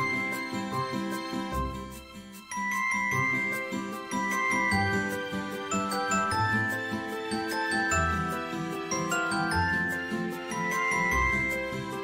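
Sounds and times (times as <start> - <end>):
bell-like melody: 0.0 - 12.0.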